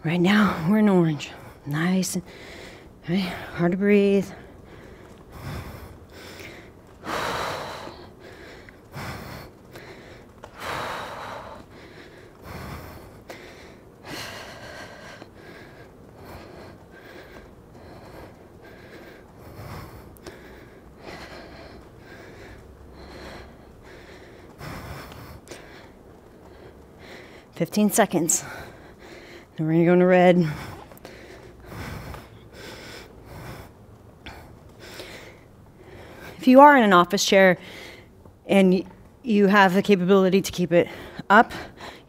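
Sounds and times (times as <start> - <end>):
woman breathing hard: 2.2 - 3.6, 4.2 - 29.6, 30.3 - 36.4, 37.6 - 38.4, 40.8 - 42.0.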